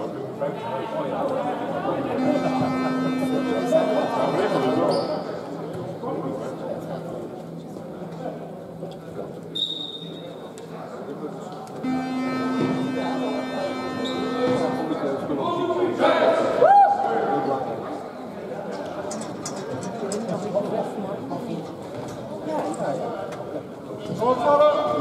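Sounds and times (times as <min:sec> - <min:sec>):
echoing chatter of people: 0:00.0 - 0:25.0
sports hall buzzer: 0:01.9 - 0:05.6, 0:11.8 - 0:16.1
loud shout rising in pitch: 0:16.3 - 0:17.3.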